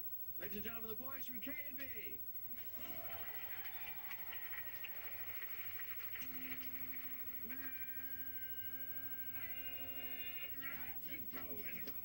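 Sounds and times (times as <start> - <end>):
studio audience applauding: 2.6 - 10.6.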